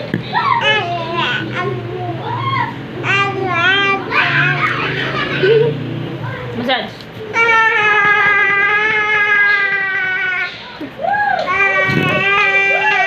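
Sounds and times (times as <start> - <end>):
electric fan humming: 0.0 - 13.0.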